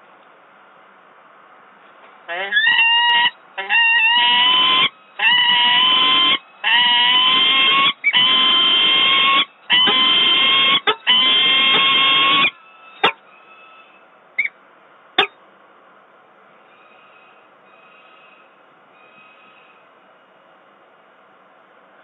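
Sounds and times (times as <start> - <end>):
falcon harsh wailing calls: 2.3 - 14.5, 16.7 - 19.8.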